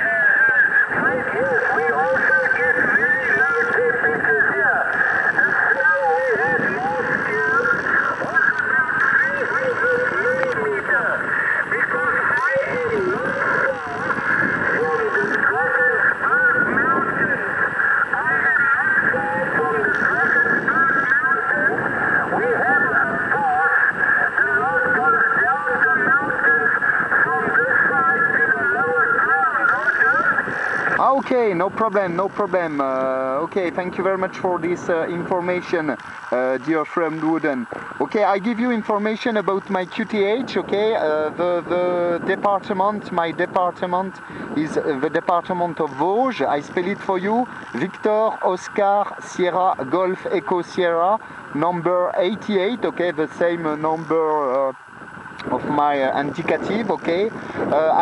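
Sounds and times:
radio band hiss: 0.0s - 58.0s
radio voice from speaker: 0.0s - 58.0s.

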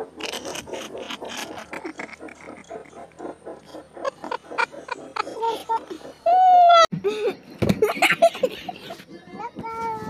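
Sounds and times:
people laughing: 3.7s - 6.8s, 7.8s - 9.0s.

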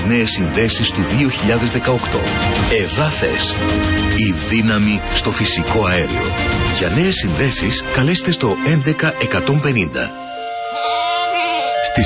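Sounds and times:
soft music with held notes: 0.0s - 12.0s
sheep bleating: 10.8s - 12.0s.

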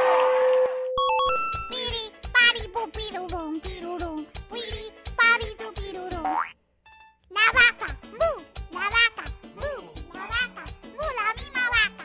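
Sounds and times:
girl singing over bouncy beat: 1.5s - 6.5s, 7.4s - 12.0s.

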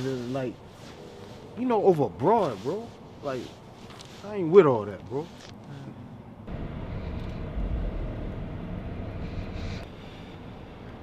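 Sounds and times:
vehicle engine rumble: 5.1s - 11.0s.

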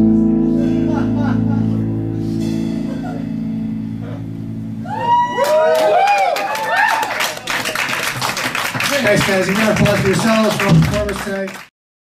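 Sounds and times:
band sustained chord: 0.0s - 4.9s
audience cheering and applause: 4.8s - 11.7s.

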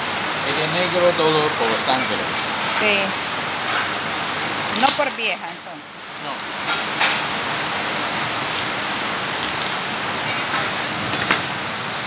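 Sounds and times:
water running and splashing: 6.4s - 12.0s.

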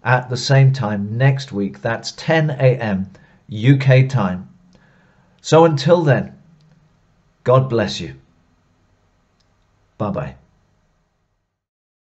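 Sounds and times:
man speaking: 0.0s - 4.6s, 5.4s - 6.6s, 7.4s - 8.3s, 10.0s - 10.5s
faint click: 9.4s - 9.8s.

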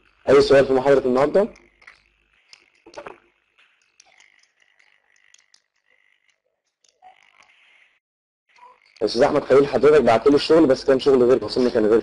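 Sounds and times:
crackly line noise: 0.0s - 12.0s
small clicks: 1.5s - 9.1s.

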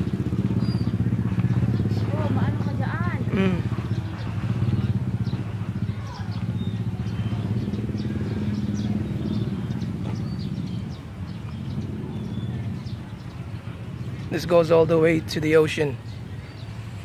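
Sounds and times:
small engine running: 0.0s - 14.0s.

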